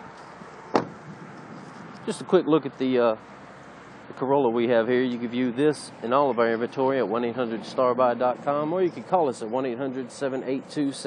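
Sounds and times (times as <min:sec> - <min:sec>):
car door shutting: 0:00.7 - 0:01.0.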